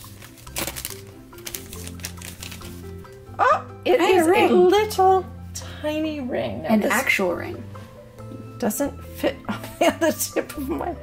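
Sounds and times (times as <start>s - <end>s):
foil wrapper crinkling: 0.0s - 3.1s
background music: 0.0s - 11.0s.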